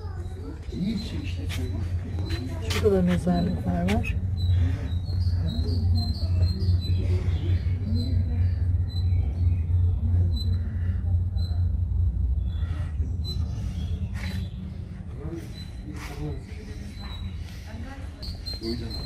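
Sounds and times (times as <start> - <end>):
distant voices: 0.0 - 19.0
low rumble: 1.6 - 15.4
bird chirps: 3.4 - 19.0.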